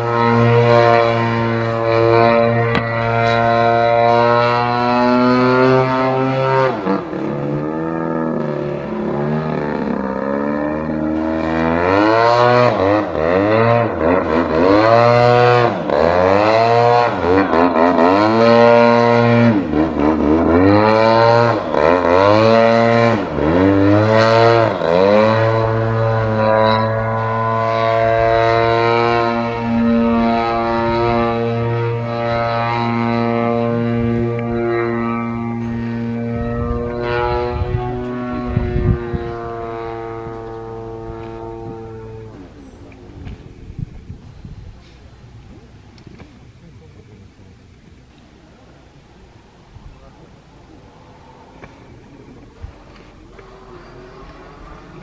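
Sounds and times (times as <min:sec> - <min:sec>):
model plane engine and propeller: 0:00.0 - 0:55.0.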